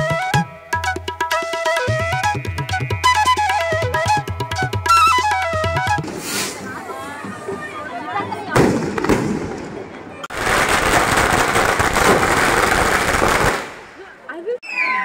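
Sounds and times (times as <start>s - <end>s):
crowd voices: 5.6s - 10.3s
firework crackling: 6.0s - 6.9s, 8.5s - 14.1s
firework bang: 8.5s - 13.9s.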